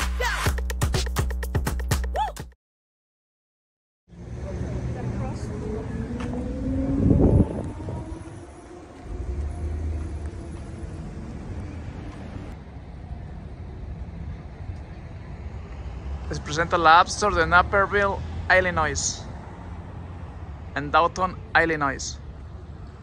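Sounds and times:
car passing close by: 4.1 - 12.6, 15.0 - 20.8
road traffic rumble: 4.1 - 23.0.

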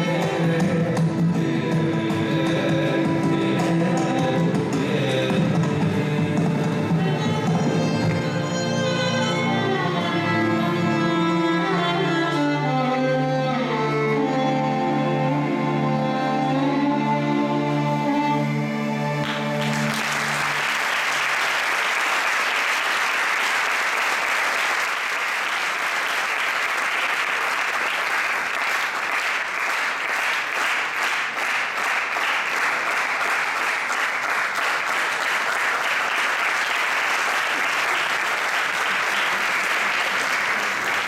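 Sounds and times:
music: 0.0 - 21.7, 31.4 - 41.0
audience clapping: 7.0 - 8.3, 19.2 - 41.0.

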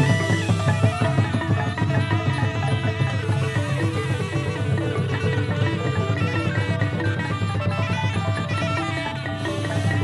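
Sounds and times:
melodic instruments playing: 0.0 - 10.0
steady drum beat: 0.0 - 10.0.

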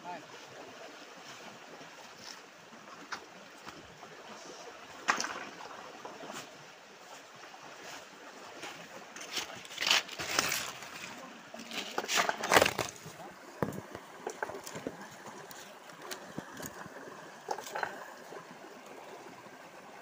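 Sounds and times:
rocky stream running: 0.0 - 20.0.

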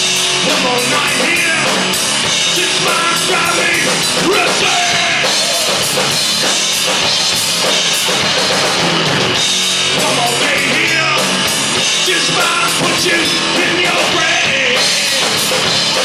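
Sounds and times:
bass guitar: 0.0 - 16.0
drum kit: 0.0 - 16.0
electric guitar: 0.0 - 16.0.

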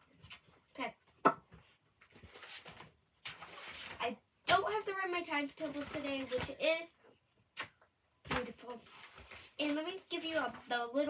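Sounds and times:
paper rustling: 2.1 - 4.2, 5.5 - 6.6, 8.3 - 11.0.

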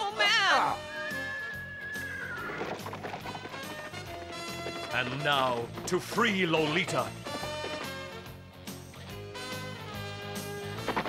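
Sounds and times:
background music: 0.0 - 11.0
hoofbeats galloping: 0.2 - 9.0
horse whinnying: 0.7 - 5.2.

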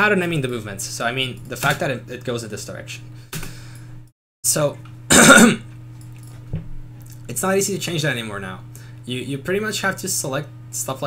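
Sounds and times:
man clearing throat: 5.1 - 5.7.

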